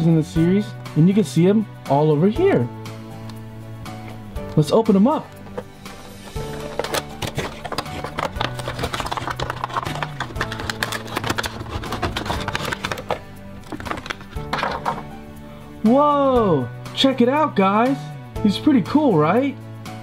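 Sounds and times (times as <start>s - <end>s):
background music: 0.0s - 20.0s
cardboard box crinkling and scraping: 6.1s - 14.2s.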